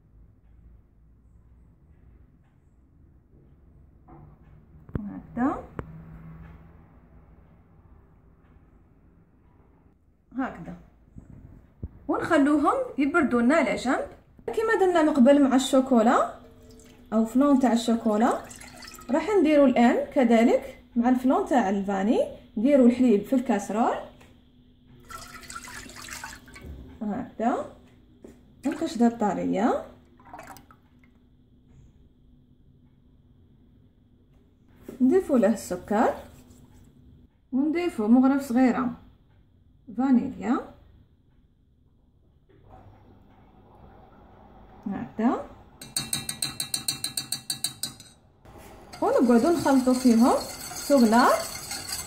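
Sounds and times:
liquid pouring into saucepan: 16.3 - 19.3, 25.0 - 26.8, 30.2 - 30.8, 45.8 - 52.0.

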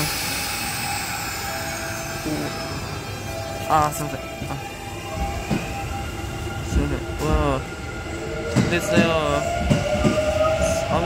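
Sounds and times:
electric trains humming and hissing: 0.0 - 11.0.

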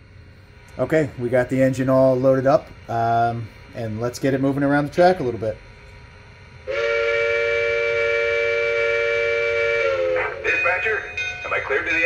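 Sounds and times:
steam locomotive whistle: 6.6 - 12.0.

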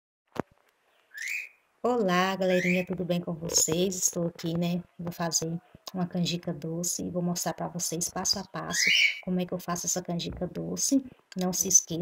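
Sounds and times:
woman speaking: 1.8 - 12.0.

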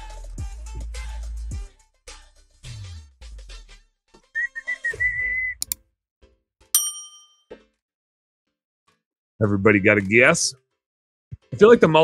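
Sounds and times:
high whistled tone: 4.4 - 5.7
bright bell ding: 6.8 - 7.4.

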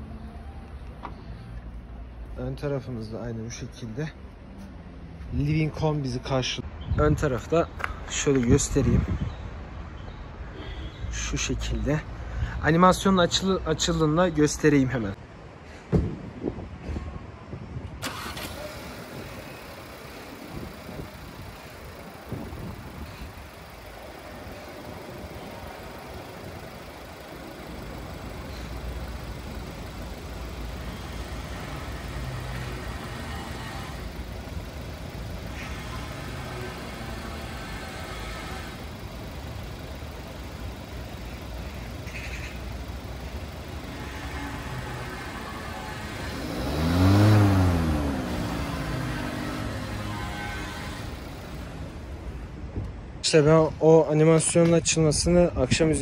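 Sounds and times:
car engine starting: 18.0 - 53.0
car engine idling: 18.0 - 53.2.

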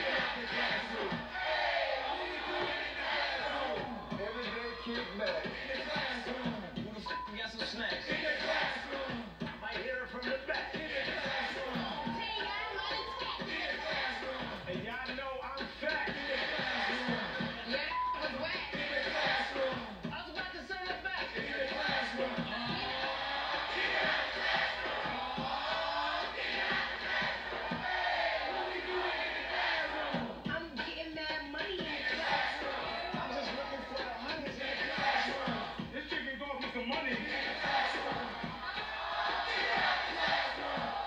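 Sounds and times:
song with voices over beat: 0.0 - 41.0.

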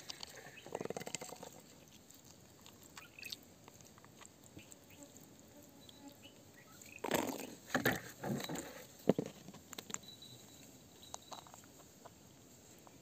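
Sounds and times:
scraping and rustling: 6.9 - 10.0.

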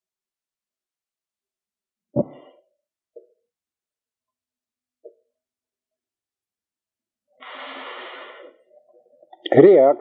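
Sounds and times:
man breathing in: 7.4 - 8.6.

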